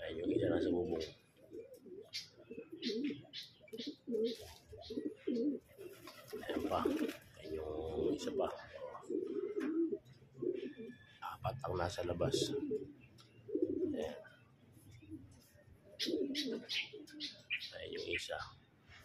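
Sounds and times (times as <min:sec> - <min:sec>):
pigeons cooing: 0:00.0 - 0:18.4.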